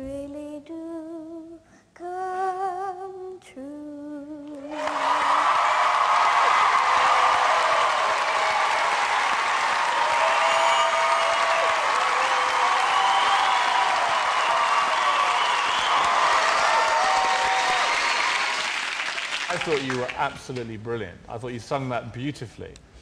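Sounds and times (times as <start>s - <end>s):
audience applauding: 4.6s - 20.8s.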